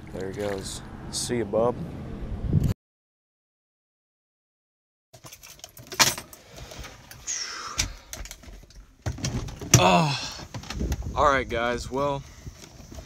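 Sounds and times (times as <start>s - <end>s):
clicks and rustles of handling: 5.2s - 7.2s.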